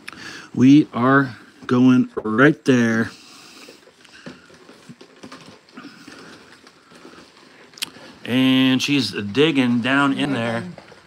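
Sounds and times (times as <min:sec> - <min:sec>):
paper rustling in plastic bag: 0:03.2 - 0:11.0.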